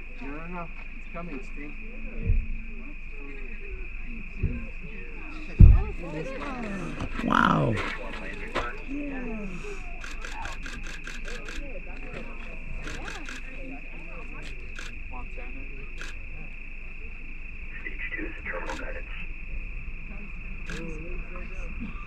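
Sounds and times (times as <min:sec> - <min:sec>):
crickets trilling: 0:00.0 - 0:22.0
faint voices: 0:01.1 - 0:19.2.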